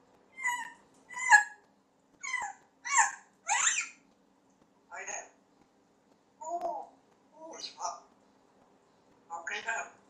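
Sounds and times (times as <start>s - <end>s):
parrot calling: 0.3s - 1.6s, 2.2s - 4.0s, 7.4s - 8.0s.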